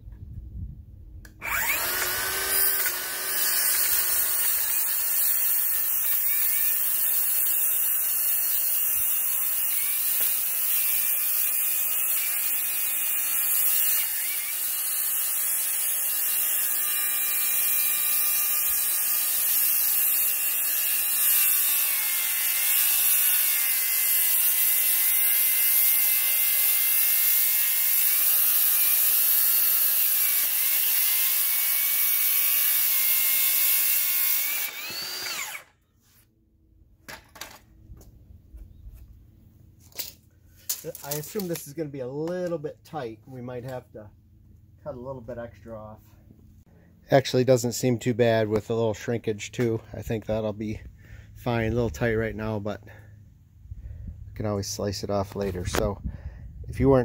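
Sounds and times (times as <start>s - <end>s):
circular saw cutting wood: 1.3s - 35.8s.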